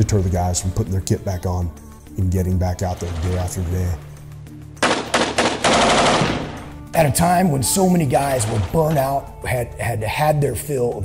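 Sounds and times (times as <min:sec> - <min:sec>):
machine gun firing: 0:04.8 - 0:06.9, 0:08.2 - 0:09.2.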